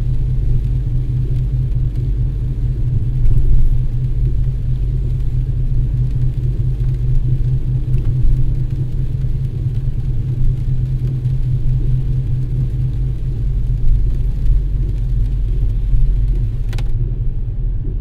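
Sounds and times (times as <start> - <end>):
car cabin rumble: 0.0 - 18.0.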